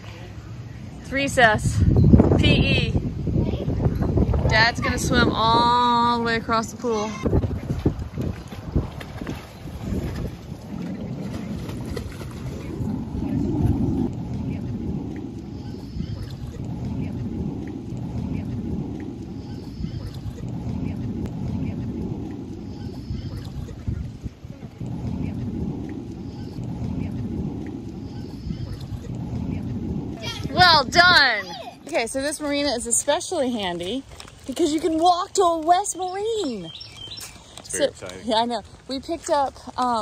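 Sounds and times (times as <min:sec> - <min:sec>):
wind buffeting microphone: 0:00.0 - 0:40.0
pool water splashing: 0:04.6 - 0:40.0.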